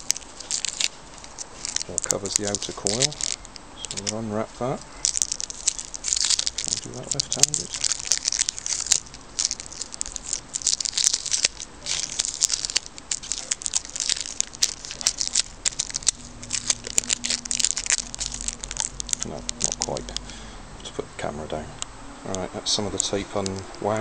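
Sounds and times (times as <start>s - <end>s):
adhesive tape peeling and crackling: 0.0s - 20.3s, 22.3s - 24.0s.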